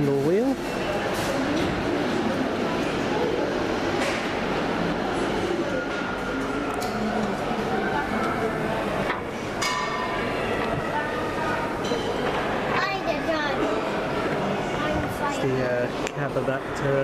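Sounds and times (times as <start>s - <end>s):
crowd chatter in a hall: 0.0s - 17.0s.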